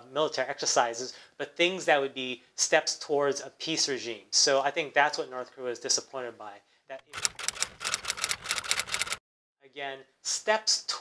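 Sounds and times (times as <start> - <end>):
typewriter key clicks: 7.1 - 9.2.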